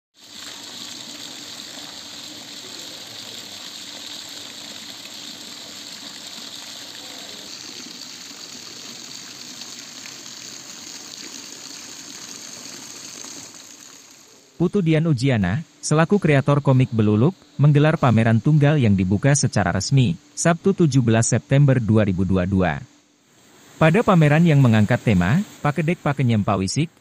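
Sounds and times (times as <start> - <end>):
water feature splashing: 0.1 - 14.6, 21.6 - 26.6.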